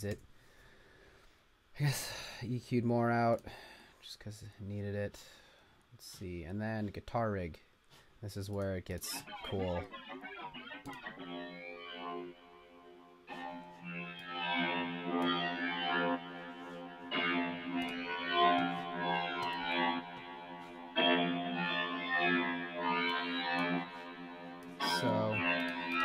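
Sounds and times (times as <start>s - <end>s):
atmospheric synth notes: 9.1s - 26.0s.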